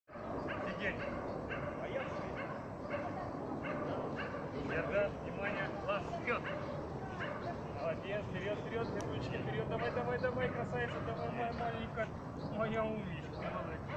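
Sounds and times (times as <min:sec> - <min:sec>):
dog barking and yipping: 0:00.1 - 0:04.6, 0:06.3 - 0:07.6.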